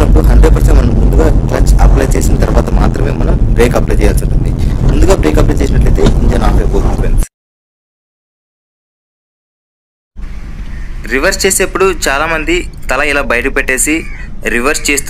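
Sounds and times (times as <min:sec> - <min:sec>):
man talking: 0:00.0 - 0:07.3, 0:11.0 - 0:15.0
steady low rumble: 0:00.0 - 0:07.3.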